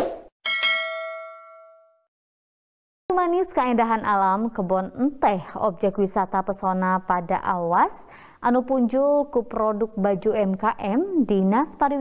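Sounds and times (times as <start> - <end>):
bell ding: 0.4 - 2.1.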